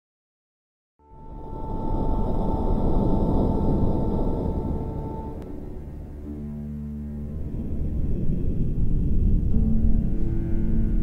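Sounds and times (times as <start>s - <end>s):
deep rumbling music swell: 1.0s - 11.0s
steady high tone: 1.0s - 11.0s.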